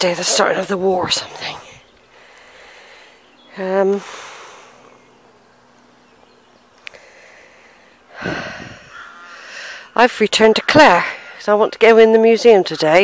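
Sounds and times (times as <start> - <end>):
woman speaking: 0.0 - 1.8, 3.5 - 4.1, 9.9 - 13.0
woman breathing: 2.1 - 3.3, 3.9 - 4.9, 6.9 - 10.0.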